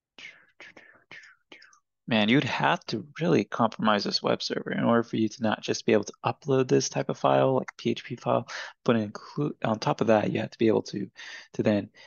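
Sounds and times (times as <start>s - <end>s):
man whispering: 0.2s - 1.8s.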